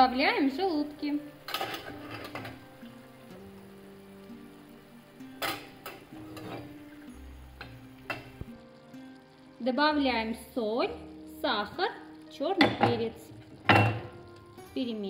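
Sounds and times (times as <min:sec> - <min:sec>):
quiet sizzle: 0:00.0 - 0:15.0
food splatting into pan: 0:01.4 - 0:03.0, 0:05.2 - 0:06.8, 0:07.6 - 0:08.5, 0:12.6 - 0:14.5.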